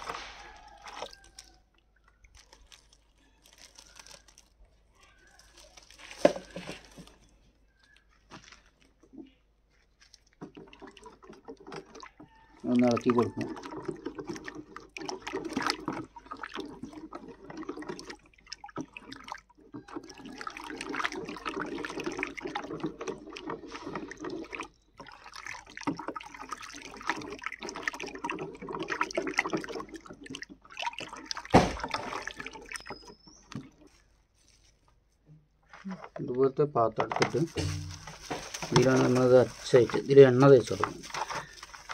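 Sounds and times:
stick stirring sloshing liquid: 0.0 - 4.6, 5.2 - 35.2, 37.2 - 41.9.

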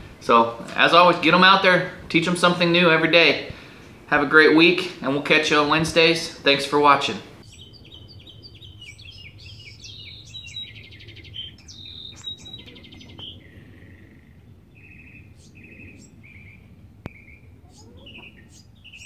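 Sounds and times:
songbirds chirping and trilling: 0.0 - 19.0
steady low hum: 0.0 - 19.0.

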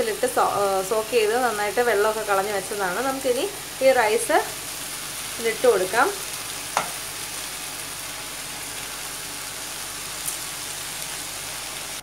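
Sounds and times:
sizzle of frying: 0.0 - 12.0
spatula knock: 6.8 - 7.0.

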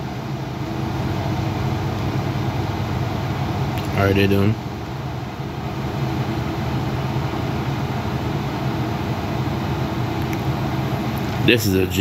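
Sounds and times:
machine humming and hissing: 0.0 - 12.0.

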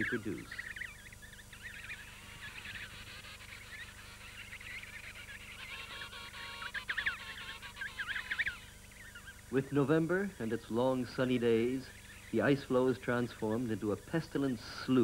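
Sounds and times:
seabird calls and whistles: 0.0 - 9.5.

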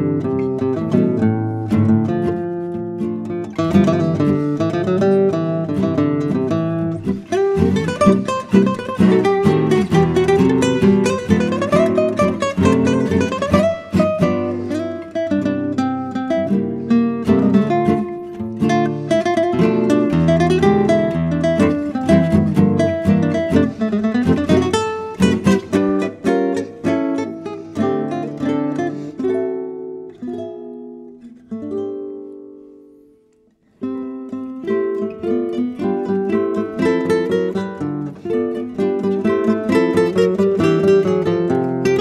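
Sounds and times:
acoustic guitar music: 0.0 - 42.0.

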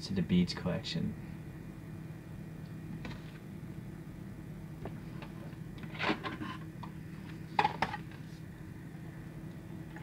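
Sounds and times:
motorized turntable humming: 0.0 - 10.0.

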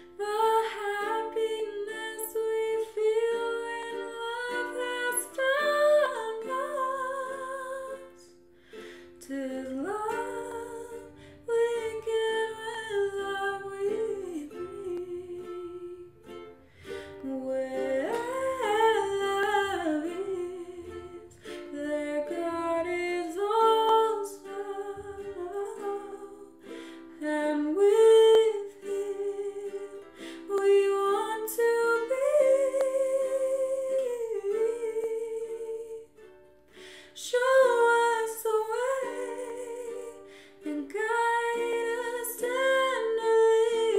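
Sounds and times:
woman singing slow melody: 0.0 - 8.4, 9.2 - 36.3, 37.1 - 43.9
ukulele: 0.0 - 43.9.

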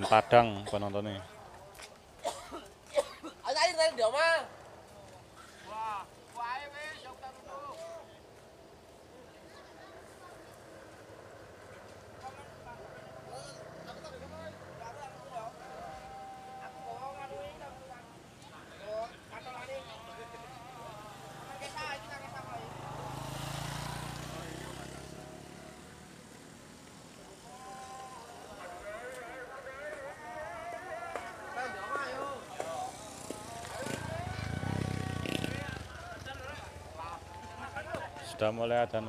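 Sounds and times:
indistinct voices: 11.6 - 17.9, 18.5 - 25.9, 27.1 - 39.0.

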